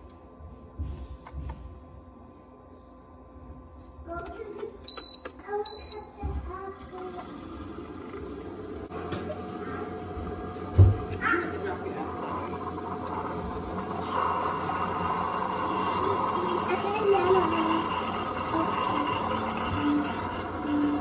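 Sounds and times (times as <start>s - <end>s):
coffee maker brewing hum and hiss: 0.0s - 21.0s.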